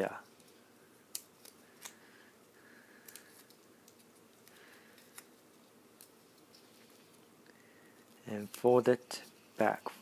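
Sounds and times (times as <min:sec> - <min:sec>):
paper being folded: 0:08.0 - 0:10.0.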